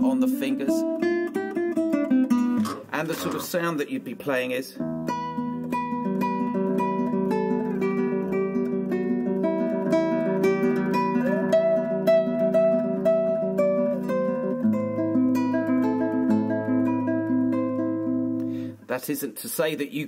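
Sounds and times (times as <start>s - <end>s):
fingerstyle classical guitar: 0.0s - 18.8s.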